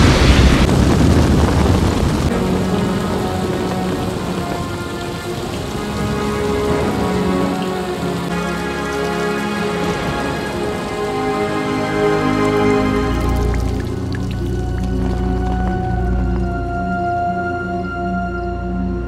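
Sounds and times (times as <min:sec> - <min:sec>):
thunder rumble: 0:00.0 - 0:16.4
heavy rain pouring: 0:00.0 - 0:17.1
slow music score: 0:02.3 - 0:19.0.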